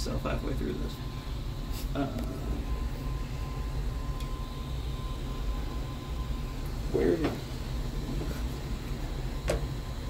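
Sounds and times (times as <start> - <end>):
cooling fans humming: 0.0 - 10.0.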